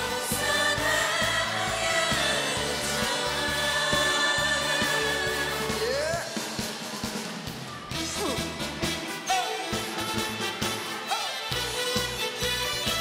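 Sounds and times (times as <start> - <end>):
voices singing together: 0.0 - 6.6
band with bass and drums: 0.0 - 13.0.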